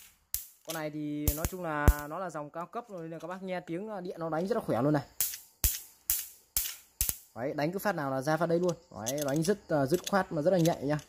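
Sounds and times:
sharp electric zaps: 0.0s - 2.2s, 4.8s - 7.5s.

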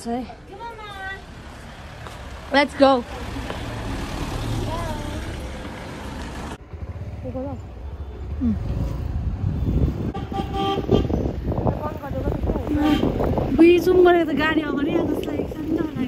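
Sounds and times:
road traffic rumble: 0.0s - 16.0s
vehicle horn: 10.0s - 11.3s, 12.7s - 13.2s.

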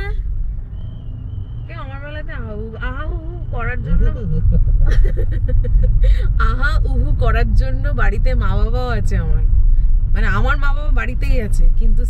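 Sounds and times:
car cabin rumble: 0.0s - 12.0s
woman laughing: 3.9s - 6.4s.

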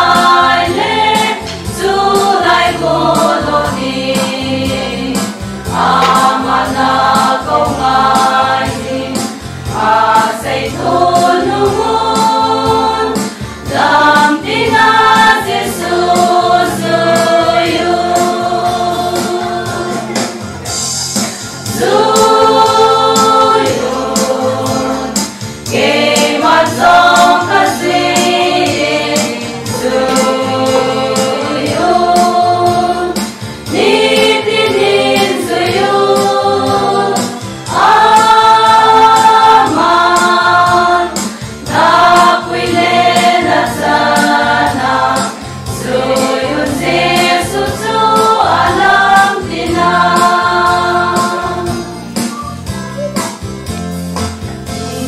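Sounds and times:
women's choir singing a hymn: 0.0s - 20.9s, 21.6s - 51.9s
electronic keyboard with steady beat: 49.7s - 55.0s.

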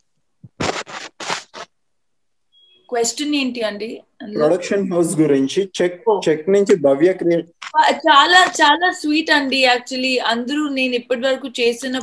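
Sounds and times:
short scratching noises: 0.4s - 1.8s.

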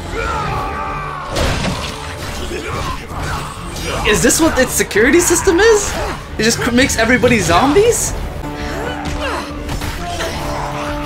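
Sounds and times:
film score music: 0.0s - 11.0s
sharp shattering crash: 1.3s - 2.4s.

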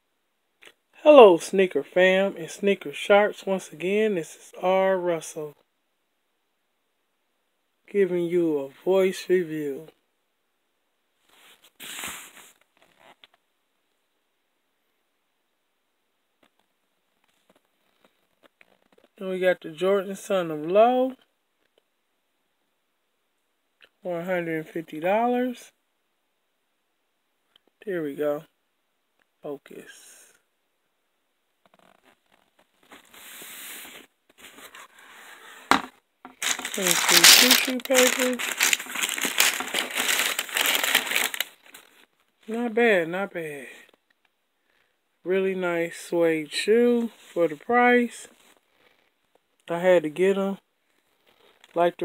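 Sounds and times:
cardboard box rustling: 35.7s - 41.8s.

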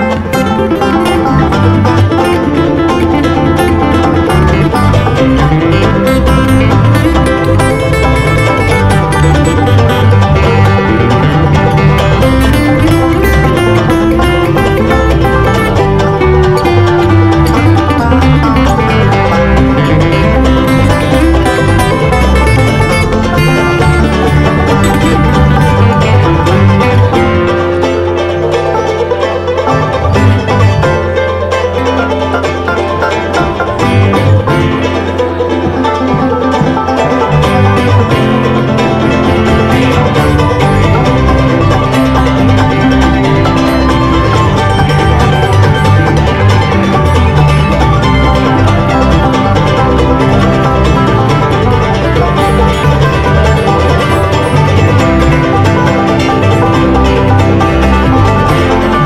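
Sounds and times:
banjo picking: 0.0s - 59.0s
bass held notes: 0.0s - 59.0s
bluegrass string band playing: 0.0s - 59.0s
guitar: 0.0s - 59.0s.

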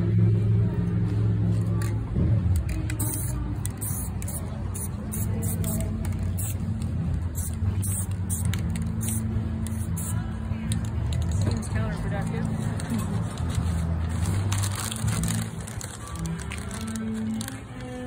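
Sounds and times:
spray can hissing: 2.6s - 11.3s.

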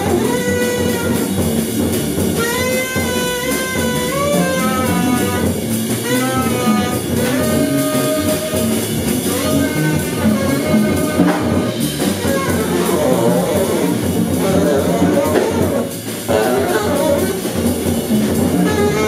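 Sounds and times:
double bass: 0.0s - 19.0s
drum kit: 0.0s - 19.0s
saxophone phrases: 0.0s - 19.0s.

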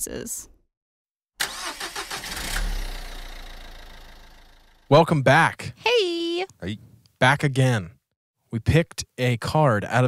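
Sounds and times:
car engine starting and idling: 1.4s - 5.0s.

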